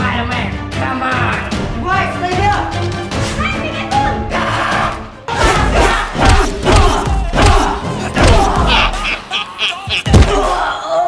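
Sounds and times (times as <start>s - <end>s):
people shouting and yelling: 3.4s - 9.3s, 9.9s - 11.0s
fistfight thuds: 10.0s - 10.5s.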